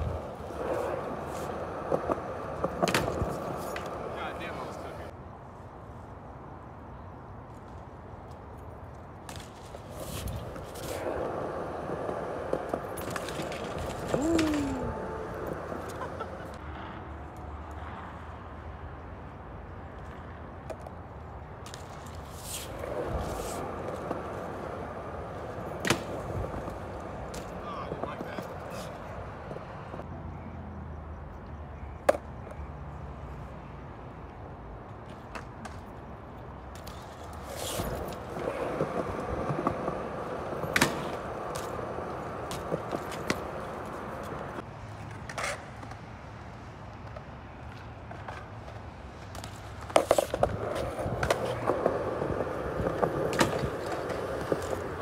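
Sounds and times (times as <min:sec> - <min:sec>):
bike tyres rolling on concrete: 0:00.0 - 0:05.2, 0:07.5 - 0:17.8, 0:19.7 - 0:30.1, 0:34.8 - 0:55.0.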